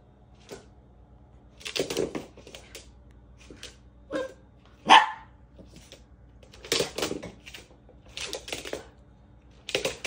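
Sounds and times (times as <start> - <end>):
dog barking: 4.1 - 5.3.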